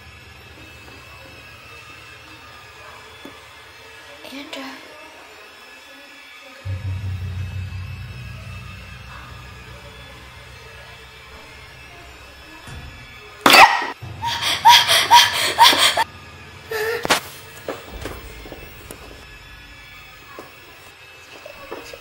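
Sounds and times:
eerie music with low drone: 0:06.6 - 0:22.0
sudden loud burst: 0:06.7 - 0:12.4.

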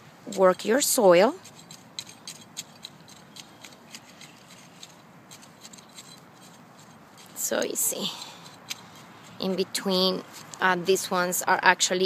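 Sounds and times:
cultivator scratching soil: 0:00.3 - 0:11.0.

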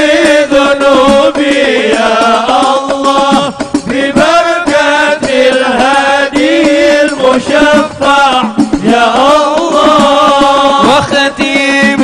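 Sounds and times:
person chanting melodically: 0:00.0 - 0:12.0.

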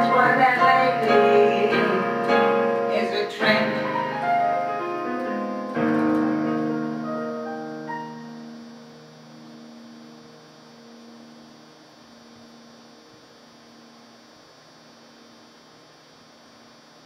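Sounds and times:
electric piano chord: 0:00.0 - 0:14.1
electrical mains hum: 0:00.0 - 0:17.0
faint high whine: 0:00.0 - 0:17.0.

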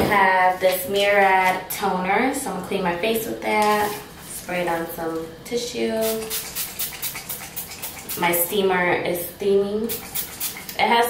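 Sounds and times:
pump spray bottle hissing: 0:06.0 - 0:08.4, 0:09.9 - 0:10.8.

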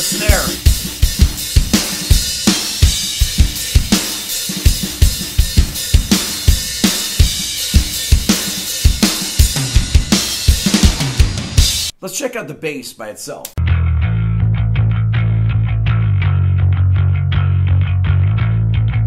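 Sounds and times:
rock drum kit groove: 0:00.0 - 0:12.0.

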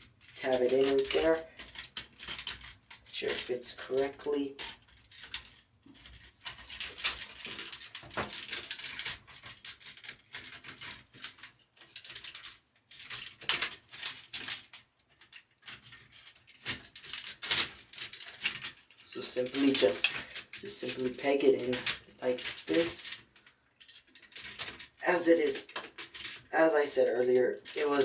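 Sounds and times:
plastic toy parts clicking and rattling: 0:00.0 - 0:28.0.

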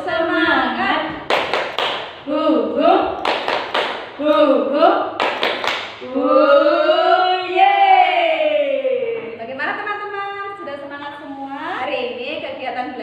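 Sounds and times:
quick hand claps: 0:01.3 - 0:02.2, 0:03.2 - 0:04.1, 0:05.2 - 0:06.0
women singing: 0:02.3 - 0:03.2, 0:04.2 - 0:05.2, 0:06.0 - 0:09.6.

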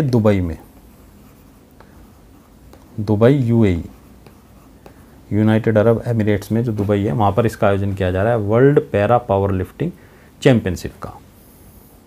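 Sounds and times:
stylus scratching on tablet: 0:00.2 - 0:08.2
stylus tapping on tablet: 0:02.6 - 0:03.0, 0:04.1 - 0:05.1.

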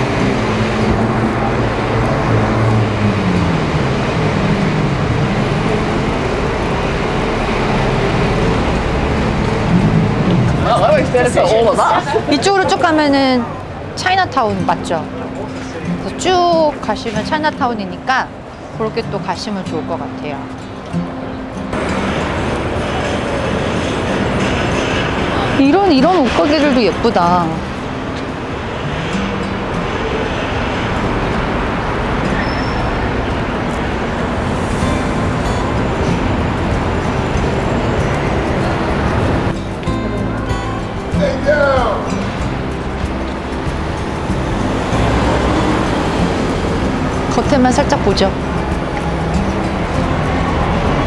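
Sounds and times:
heavy vehicle passing: 0:00.0 - 0:51.0
background music with low notes: 0:34.0 - 0:51.0.

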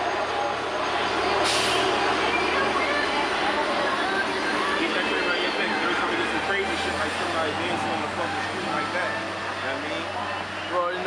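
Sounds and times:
background voices: 0:00.0 - 0:11.0
city street traffic: 0:00.0 - 0:11.0.

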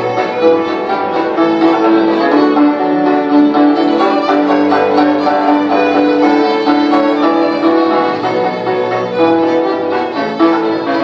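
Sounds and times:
folk band with fiddles: 0:00.0 - 0:11.0.

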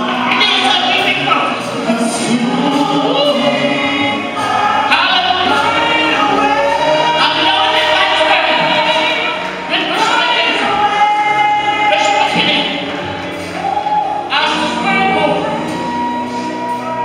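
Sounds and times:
choir and congregation singing: 0:00.0 - 0:17.0.

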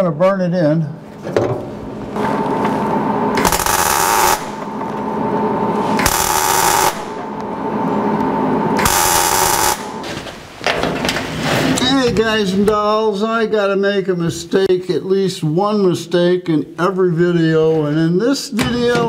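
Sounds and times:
welder arc crackling: 0:02.1 - 0:10.8.

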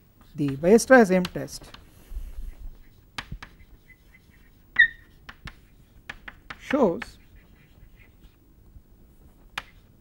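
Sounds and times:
chalk tapping and scratching: 0:00.2 - 0:08.4, 0:09.2 - 0:10.0
chalk squeak: 0:03.6 - 0:05.2.

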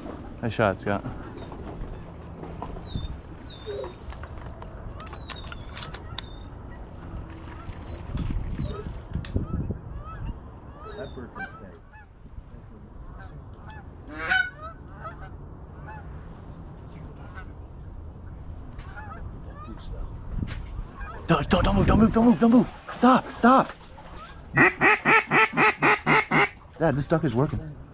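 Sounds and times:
wind rumble on microphone: 0:01.3 - 0:22.4
geese honking: 0:09.4 - 0:12.1, 0:13.0 - 0:16.1, 0:18.8 - 0:19.8, 0:20.9 - 0:21.3, 0:24.1 - 0:26.6.

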